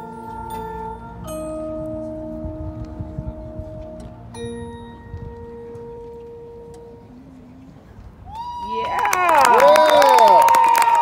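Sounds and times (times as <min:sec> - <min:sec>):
band holding sustained tone: 0:00.0 - 0:08.3
low outdoor rumble: 0:00.0 - 0:11.0.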